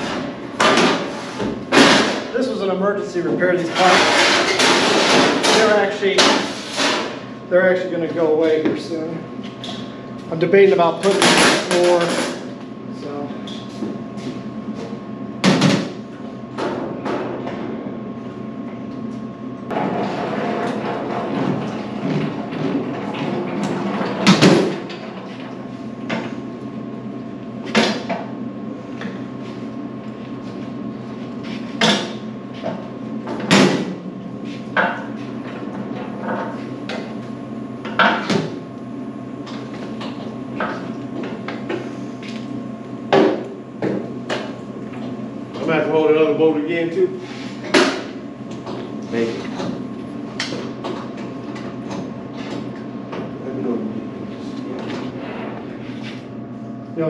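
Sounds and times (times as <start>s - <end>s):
steady hum: 0.0s - 57.0s.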